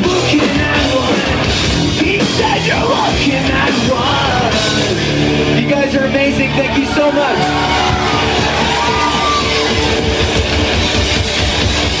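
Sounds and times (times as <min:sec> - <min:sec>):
punk rock band playing: 0:00.0 - 0:12.0.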